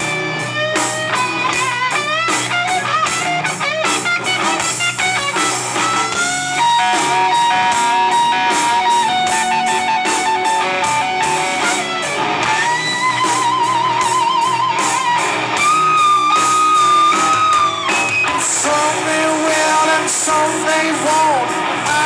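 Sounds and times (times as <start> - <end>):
bass: 0.0 - 22.0
drums: 0.0 - 22.0
electric guitar solo: 0.0 - 22.0.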